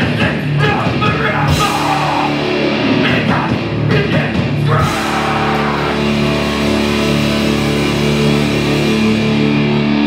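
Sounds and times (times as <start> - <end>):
live hardcore band playing: 0.0 - 10.0.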